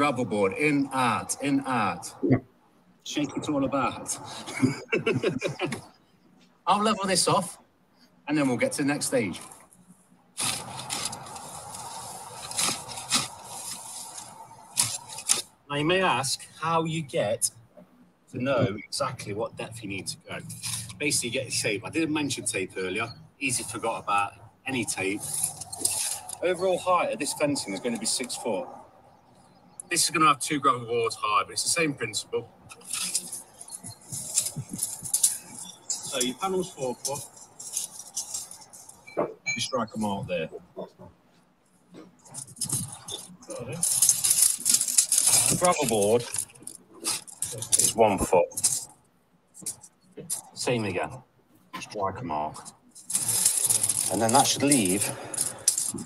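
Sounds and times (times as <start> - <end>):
steady background noise: 0.0 - 56.0
spoken word: 3.1 - 5.8
hand tools clinking and scraping: 24.8 - 26.7, 32.7 - 39.2, 42.1 - 48.9, 52.6 - 56.0.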